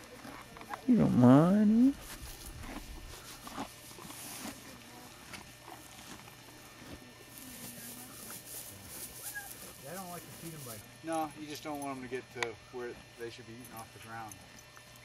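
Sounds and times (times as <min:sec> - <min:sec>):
horse eating hay: 0:00.0 - 0:11.8
faint voices: 0:00.0 - 0:14.4.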